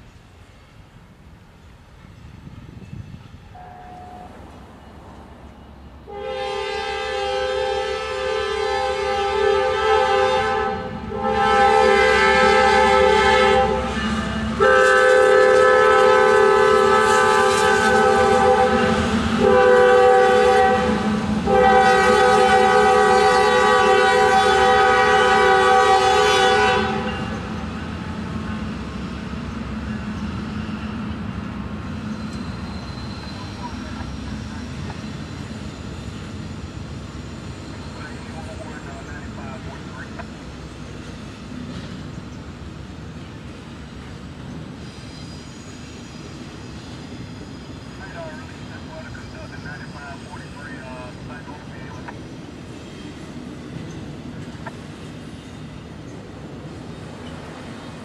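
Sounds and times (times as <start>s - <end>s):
locomotive air horn blasts: 3.6s - 4.4s, 6.1s - 27.5s
freight cars rumbling and clattering: 31.0s - 43.2s.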